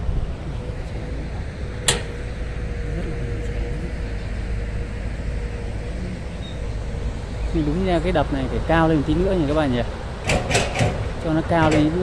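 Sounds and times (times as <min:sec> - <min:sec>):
faint whine: 0:00.0 - 0:10.2
excavator engine running: 0:00.0 - 0:12.0.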